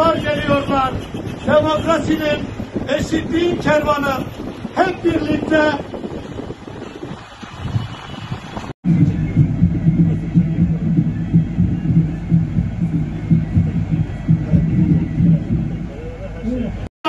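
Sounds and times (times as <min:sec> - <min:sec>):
road rumble: 0:00.0 - 0:16.9
wind buffeting microphone: 0:00.0 - 0:16.9
coach engine drone: 0:08.8 - 0:16.9.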